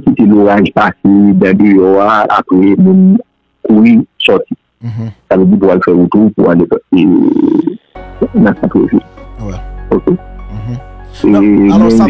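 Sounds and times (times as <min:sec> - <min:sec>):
background music: 0:00.0 - 0:05.6, 0:07.1 - 0:12.0
man speaking: 0:00.0 - 0:07.3, 0:08.3 - 0:09.7, 0:10.5 - 0:12.0.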